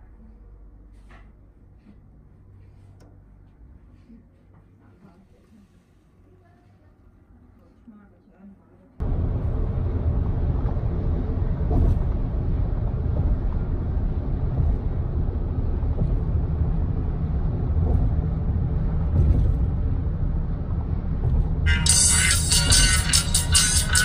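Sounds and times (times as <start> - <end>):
car cabin road rumble: 9.0 - 24.0
music: 21.7 - 24.0.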